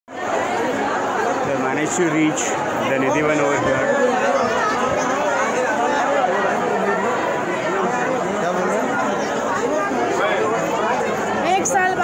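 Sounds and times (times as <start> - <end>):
crowd chatter: 0.1 - 12.0.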